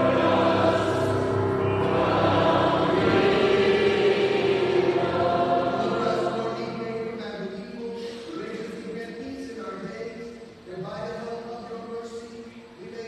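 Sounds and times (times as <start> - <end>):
group singing a hymn: 0.0 - 7.4.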